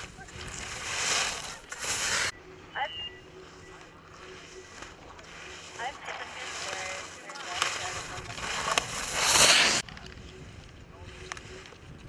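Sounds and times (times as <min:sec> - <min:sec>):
ski edges scraping on snow: 0:00.0 - 0:02.4, 0:04.3 - 0:09.9.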